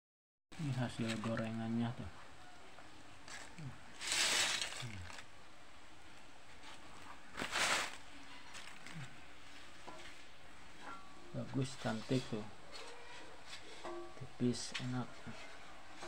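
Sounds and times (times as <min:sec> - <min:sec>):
banana chips rustling in basket: 0:03.2 - 0:05.3, 0:06.6 - 0:09.2.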